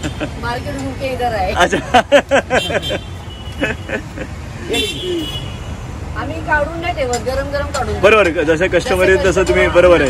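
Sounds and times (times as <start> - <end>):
street traffic: 0.0 - 10.0
voices: 0.0 - 10.0.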